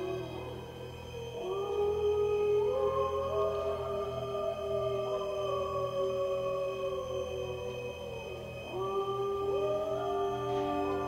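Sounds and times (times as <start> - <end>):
wolf howling: 0.0 - 11.0.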